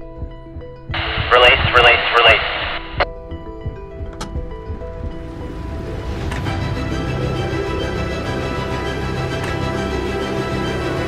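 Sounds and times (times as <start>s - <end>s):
voice over two-way radio: 1.0s - 3.0s.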